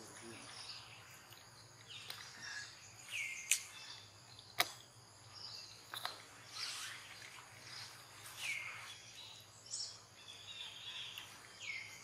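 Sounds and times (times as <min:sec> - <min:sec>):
insect calls: 0:00.0 - 0:12.0
faint bird calls: 0:00.2 - 0:12.0.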